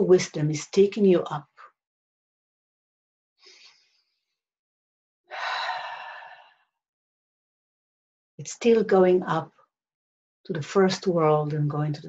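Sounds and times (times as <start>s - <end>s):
woman breathing through mouth: 5.3s - 6.6s.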